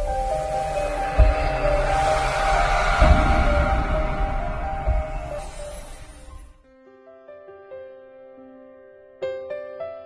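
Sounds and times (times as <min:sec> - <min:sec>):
deep boom: 0:00.0 - 0:06.5
rising whoosh: 0:00.0 - 0:06.6.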